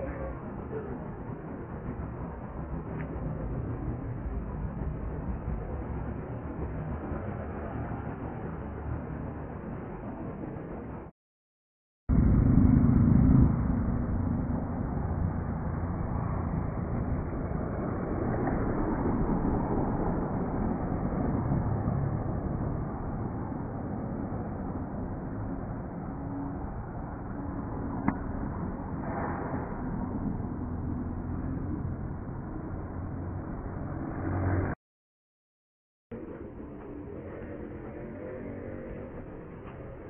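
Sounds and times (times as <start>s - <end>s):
road traffic rumble: 12.1s - 34.8s.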